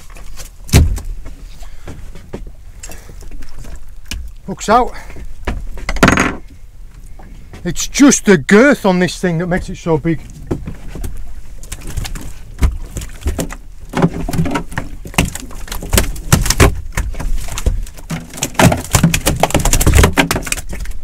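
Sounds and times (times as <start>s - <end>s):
eel thrashing on boat deck: 10.4s - 21.0s.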